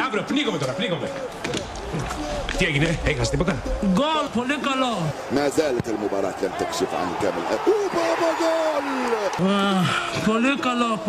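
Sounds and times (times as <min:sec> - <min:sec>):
man talking excitedly: 0:02.4 - 0:11.0.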